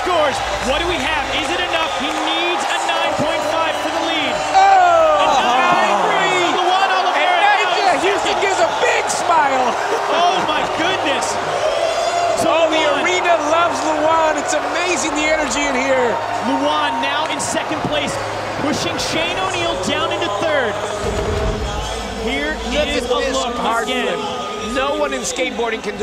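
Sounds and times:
crowd cheering and shouting: 0.0 - 26.0.

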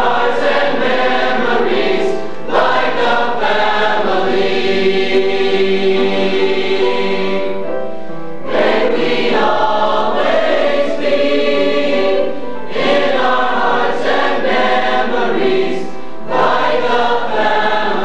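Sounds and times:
choir singing held chords: 0.0 - 7.8, 8.4 - 18.0.

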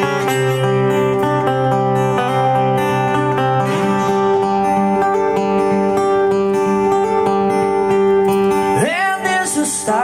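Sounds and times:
acoustic guitar chords: 0.0 - 10.0
man singing: 8.7 - 10.0.

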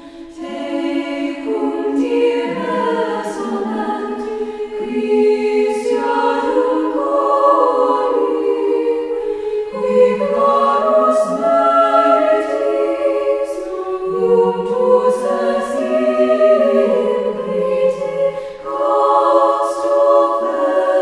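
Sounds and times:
choir singing unaccompanied: 0.0 - 21.0.

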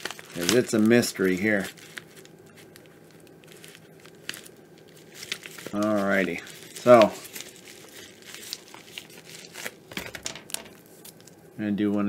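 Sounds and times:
padded envelope crinkling: 0.0 - 11.4.

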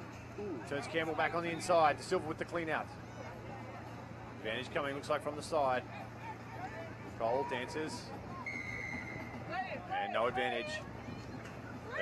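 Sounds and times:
crowd noise: 0.0 - 12.0
referee's whistle blast: 8.5 - 9.3.

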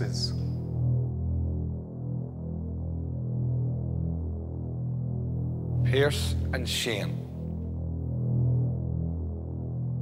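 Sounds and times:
low suspense music drone: 0.0 - 10.0.

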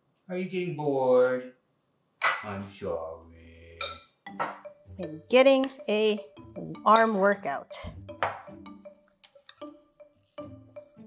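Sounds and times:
soft background music: 2.4 - 11.0
fork scraping a glass bowl: 6.9 - 11.0.

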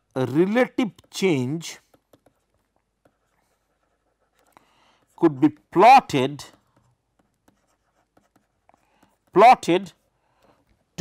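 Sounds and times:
stylus tapping on tablet: 0.8 - 1.2, 1.8 - 3.3, 4.4 - 9.5.

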